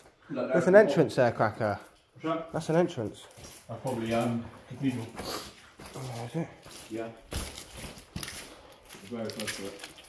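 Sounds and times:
footsteps crunching on stone rubble: 3.2s - 10.0s.

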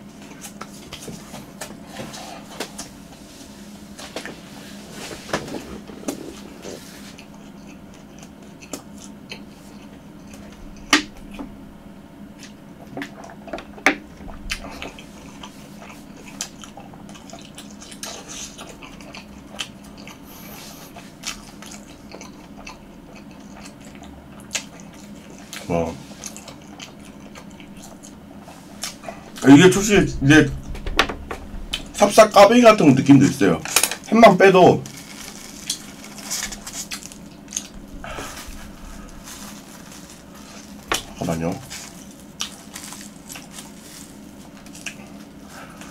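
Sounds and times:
crunchy chewing: 5.6s - 11.6s, 12.4s - 29.4s, 34.9s - 45.9s
fried crust crackling: 34.8s - 45.9s
small crunches: 34.8s - 45.9s.

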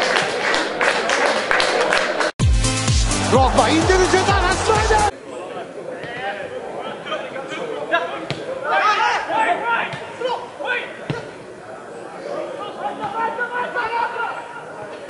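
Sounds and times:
footballers calling out: 2.9s - 15.0s.

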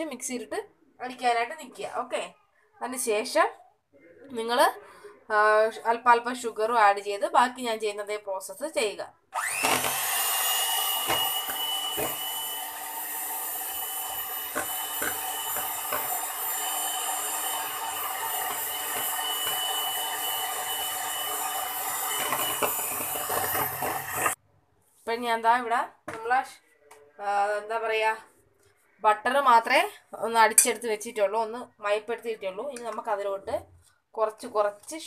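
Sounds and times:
electric hand mixer running: 9.4s - 24.4s.

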